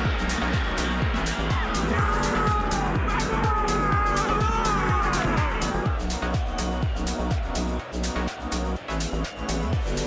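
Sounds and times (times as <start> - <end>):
electronic music with kick drum: 0.0 - 10.0.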